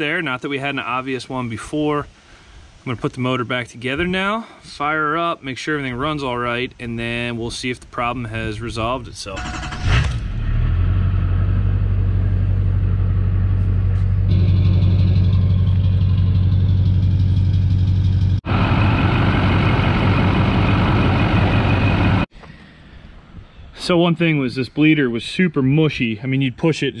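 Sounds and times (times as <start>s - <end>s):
diesel engine idling: 9.4s - 22.3s.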